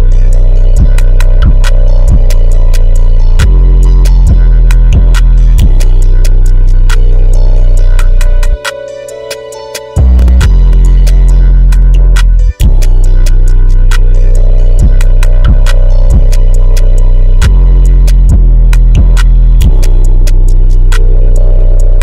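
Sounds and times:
booming bass line: 0.0 - 8.9, 9.5 - 22.0
ticking hi-hats: 0.0 - 22.0.

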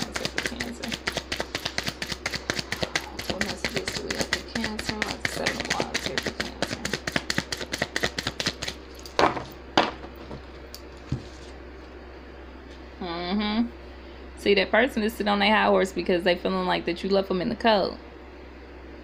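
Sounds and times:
rapid even clicking: 0.0 - 8.7.

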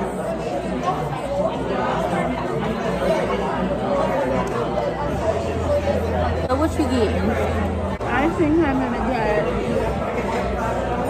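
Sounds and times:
chatter of many diners: 0.0 - 11.0.

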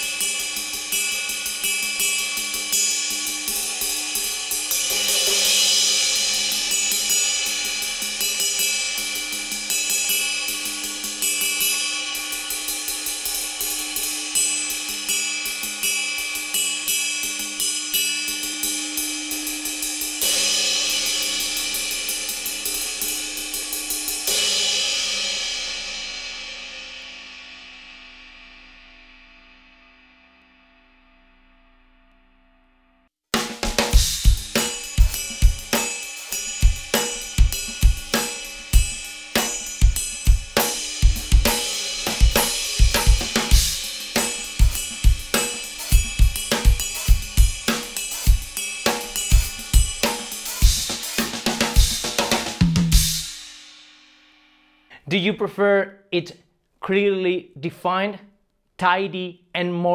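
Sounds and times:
drumstick strokes on ride cymbal: 0.0 - 30.0, 33.4 - 55.0
cymbal ringing out: 0.0 - 30.5, 33.4 - 54.9.

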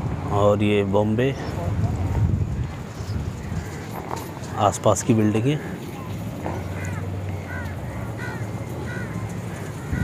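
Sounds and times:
wind buffeting microphone: 0.0 - 4.6, 5.6 - 10.0.

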